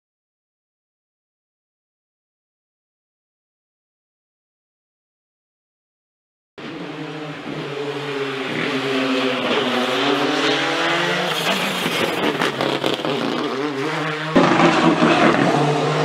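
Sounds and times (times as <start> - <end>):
loud car engine: 6.6 - 16.0
rally car engine at speed: 6.6 - 16.0.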